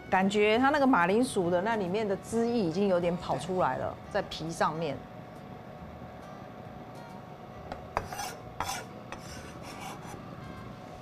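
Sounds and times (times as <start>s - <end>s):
faint steady hum: 0.0s - 11.0s
knife scraping cutting board: 8.0s - 10.2s.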